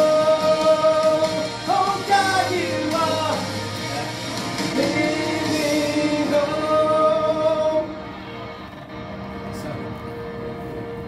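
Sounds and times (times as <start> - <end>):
man singing into a microphone: 0.0 - 8.0.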